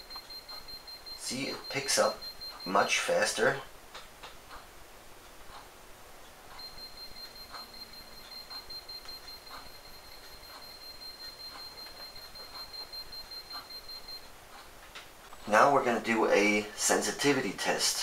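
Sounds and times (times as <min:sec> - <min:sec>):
high-pitched alarm tone: 0:00.0 - 0:03.6, 0:06.6 - 0:14.2.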